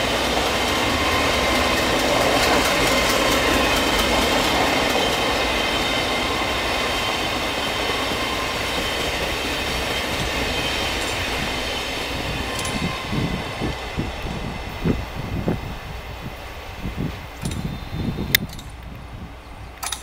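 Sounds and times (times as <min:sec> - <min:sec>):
train wheels rumbling on rails: 0:00.0 - 0:20.0
high ringing tones: 0:02.9 - 0:14.3.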